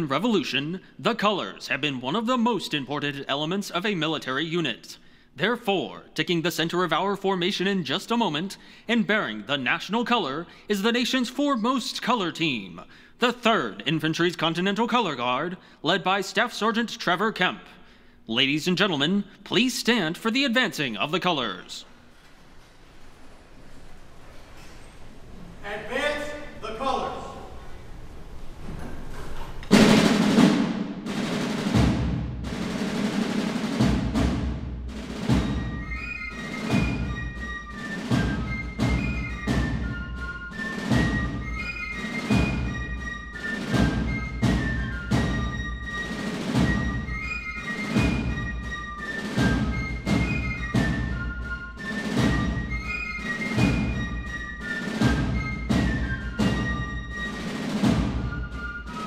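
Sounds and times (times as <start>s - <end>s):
marching drum beat: 29.7s - 59.0s
military band playing a march: 29.7s - 59.0s.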